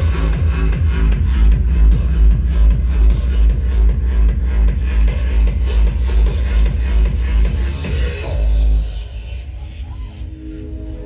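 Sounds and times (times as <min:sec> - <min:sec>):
trance dance music: 0:00.0 - 0:11.0.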